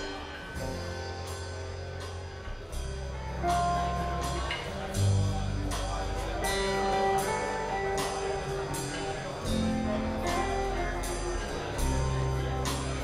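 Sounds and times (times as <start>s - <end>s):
acoustic guitars: 0.0s - 13.0s
drums keeping steady beat: 0.0s - 13.0s
upright bass: 0.0s - 13.0s.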